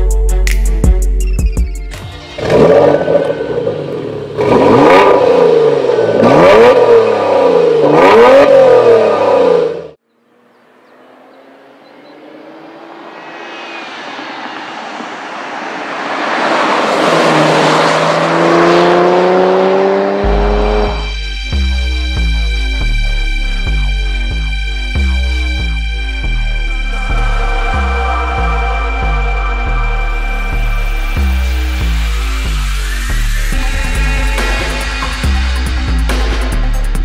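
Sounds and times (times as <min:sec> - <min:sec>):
car engine revving: 0:02.0 - 0:22.9
car approaching on road: 0:02.1 - 0:21.1.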